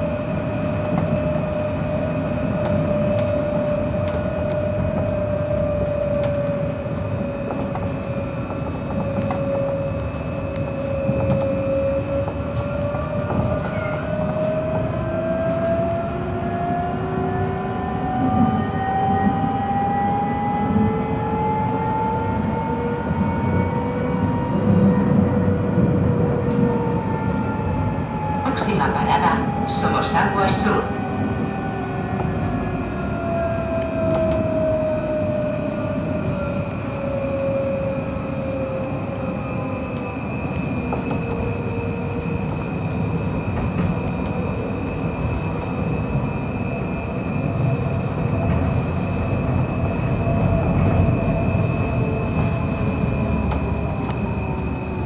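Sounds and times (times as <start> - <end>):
tram wheels rumbling on rail: 0.0 - 55.0.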